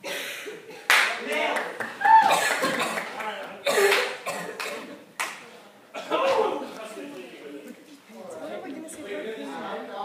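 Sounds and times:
people clapping: 0:00.8 - 0:05.5.

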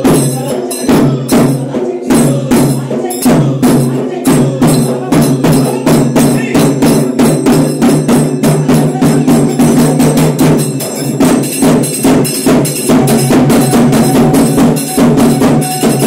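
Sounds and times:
loud fast drumming: 0:00.0 - 0:16.0.

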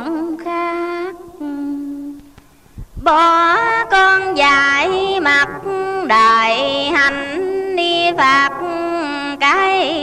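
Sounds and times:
woman chanting: 0:00.0 - 0:02.4, 0:03.0 - 0:10.0.

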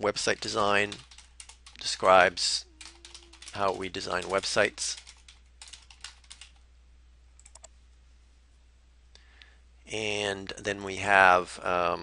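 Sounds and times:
computer keyboard typing: 0:00.2 - 0:06.6, 0:07.4 - 0:07.7.

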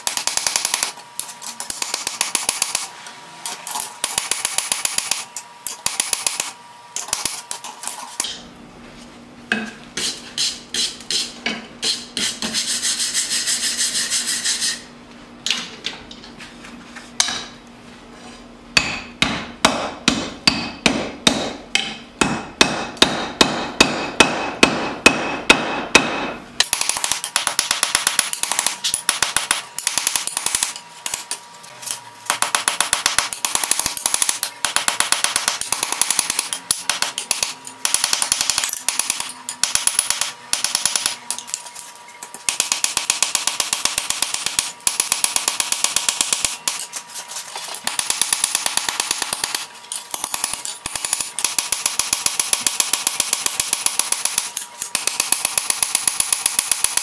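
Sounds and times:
hammer striking steel on anvil: 0:18.8 - 0:30.8.

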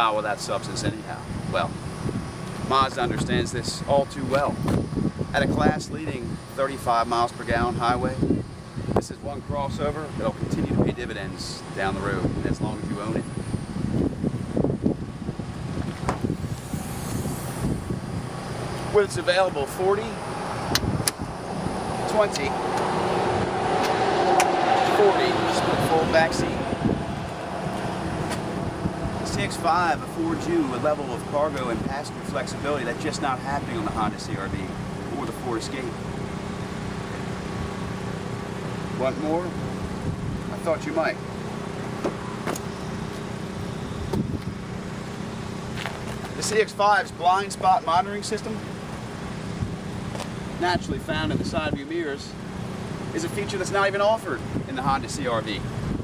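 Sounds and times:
outdoor background noise: 0:00.0 - 0:56.0
car engine idling: 0:15.0 - 0:46.4.

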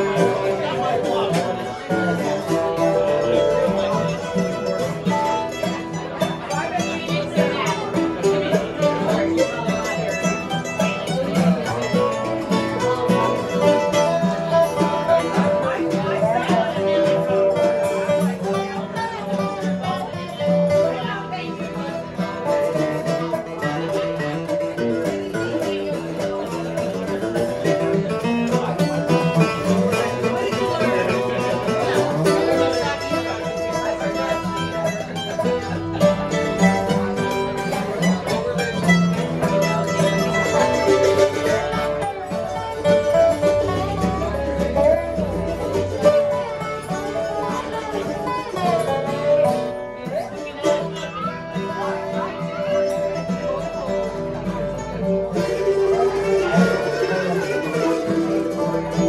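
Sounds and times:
bluegrass instrumental music: 0:00.0 - 0:59.0.

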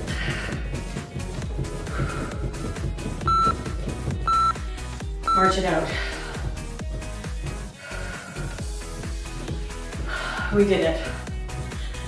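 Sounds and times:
upbeat workout music: 0:00.0 - 0:12.0
timer countdown beeps: 0:03.3 - 0:03.7, 0:04.3 - 0:04.6, 0:05.2 - 0:05.6.

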